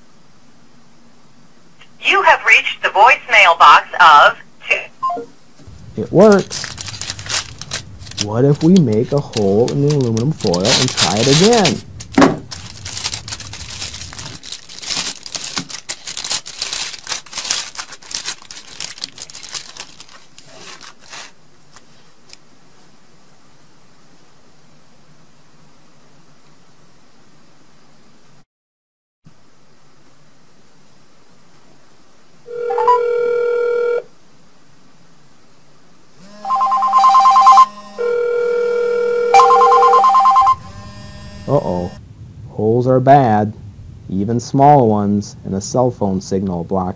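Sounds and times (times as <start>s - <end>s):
aluminium foil crinkling: 5.9s - 22.4s
cell phone ringing: 32.5s - 34.1s, 36.3s - 42.0s.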